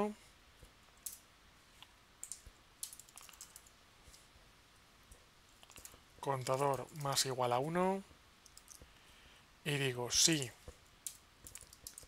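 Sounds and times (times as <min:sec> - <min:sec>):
computer keyboard keystrokes: 0:02.2 - 0:03.7, 0:11.0 - 0:12.0.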